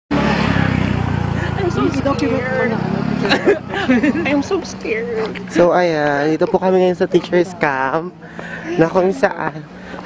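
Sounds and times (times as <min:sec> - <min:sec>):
people talking and laughing: 0:00.2 - 0:10.0.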